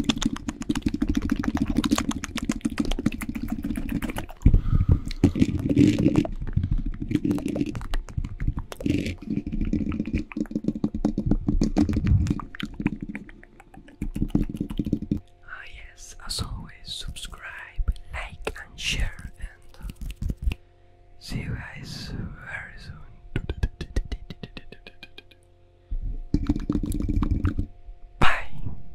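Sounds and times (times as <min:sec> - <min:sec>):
whispered mouth sounds: 0:00.0 - 0:20.6, 0:21.2 - 0:25.4, 0:26.3 - 0:28.8.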